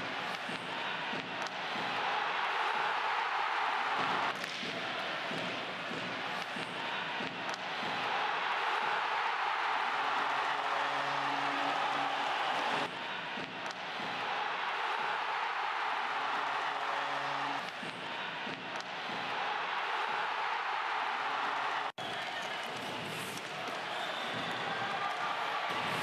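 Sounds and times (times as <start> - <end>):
crowd cheering and applauding: 0.0 - 26.0.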